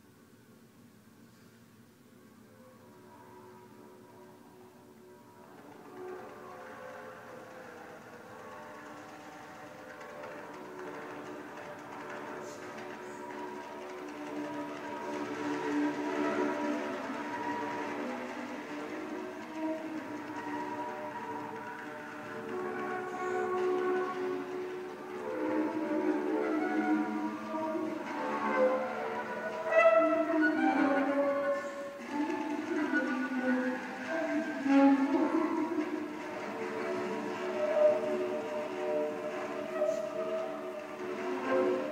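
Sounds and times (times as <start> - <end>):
alto saxophone: 5.4 - 41.9.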